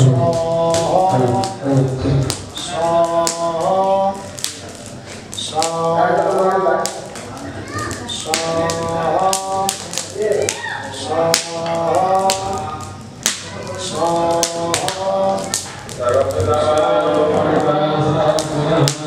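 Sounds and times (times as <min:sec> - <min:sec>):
person chanting: 0:00.0 - 0:19.0
wood fire crackling: 0:00.0 - 0:19.0.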